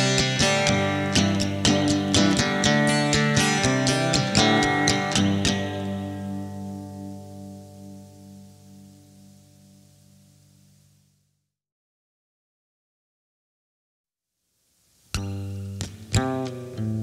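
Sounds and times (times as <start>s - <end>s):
guitar chords strummed: 0.0s - 10.9s, 15.1s - 17.0s.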